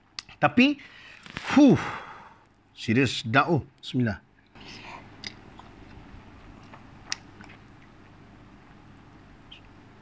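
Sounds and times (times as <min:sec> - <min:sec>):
man chewing food: 0:04.4 - 0:09.9
mouth clicks: 0:06.6 - 0:07.7.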